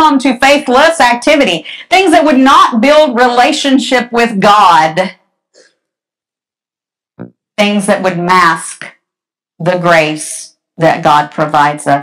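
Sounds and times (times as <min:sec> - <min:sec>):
woman speaking: 0:00.0 - 0:05.1, 0:07.6 - 0:08.9, 0:09.6 - 0:12.0.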